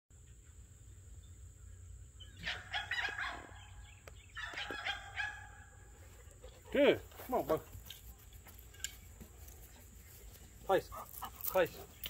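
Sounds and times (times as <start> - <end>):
bird calling: 1.6 - 6.7.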